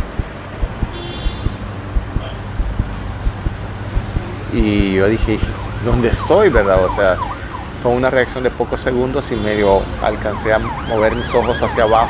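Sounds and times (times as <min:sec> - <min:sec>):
low thumps: 0:00.0 - 0:04.6
road traffic wash: 0:00.0 - 0:12.0.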